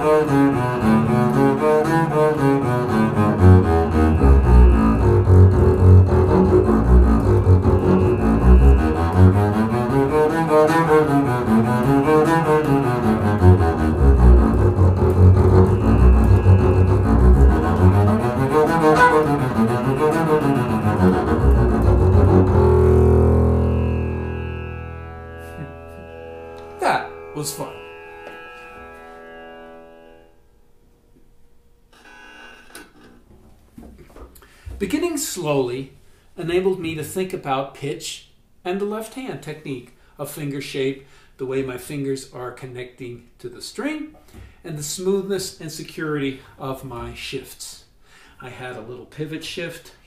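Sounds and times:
bowed double bass scale: 0:00.0 - 0:31.0.

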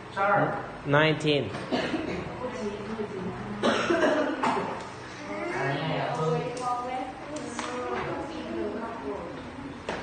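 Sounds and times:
person coughing: 0:01.7 - 0:02.3, 0:03.6 - 0:04.7.

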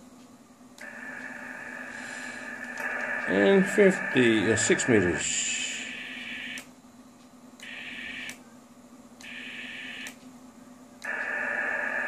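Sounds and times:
faint steady hum: 0:00.0 - 0:12.0
radio receiver hiss: 0:00.8 - 0:06.6, 0:11.0 - 0:12.0.

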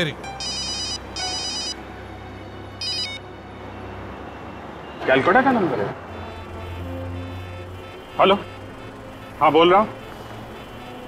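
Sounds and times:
phone ringtone trilling: 0:00.2 - 0:01.9, 0:02.8 - 0:03.3.

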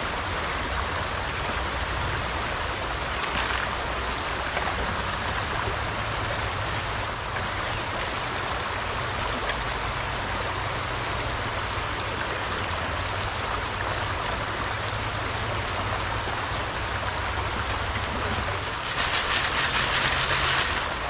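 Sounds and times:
creek water rushing over rocks: 0:00.0 - 0:21.0
water splashing: 0:02.2 - 0:08.4, 0:15.8 - 0:21.0.

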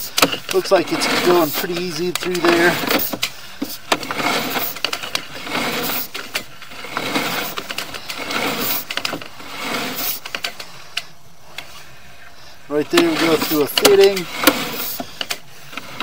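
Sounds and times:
cable reel rattling and clicking: 0:00.0 - 0:11.8, 0:12.7 - 0:16.0.

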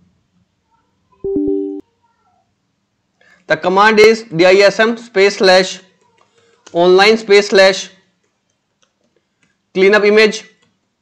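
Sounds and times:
flat-pitched tone: 0:01.2 - 0:01.8.

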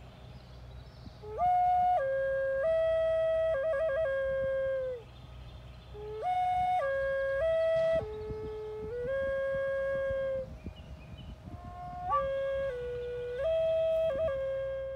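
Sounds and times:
flute playing slow melody: 0:01.0 - 0:14.9.

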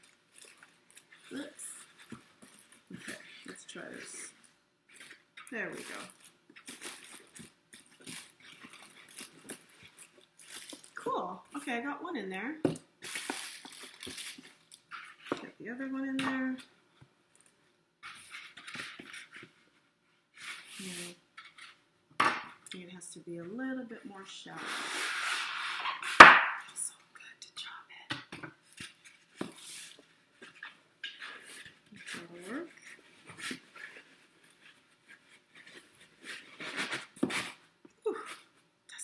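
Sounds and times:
cellophane crinkling: 0:00.0 - 0:11.0, 0:13.0 - 0:15.3.

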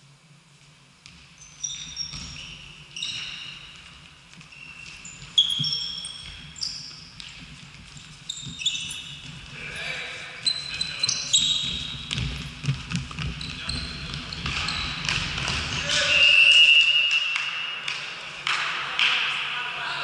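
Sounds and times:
ball kicks and bounces: 0:01.0 - 0:09.6, 0:11.4 - 0:16.0
shoe squeaks on court: 0:01.3 - 0:09.4, 0:10.4 - 0:12.6, 0:13.2 - 0:17.0.

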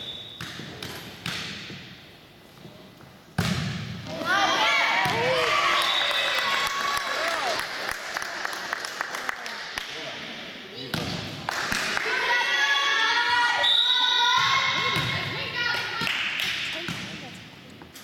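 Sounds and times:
volleyball bouncing on wooden floor: 0:03.4 - 0:04.0
voices echoing in a gym: 0:04.1 - 0:18.0.

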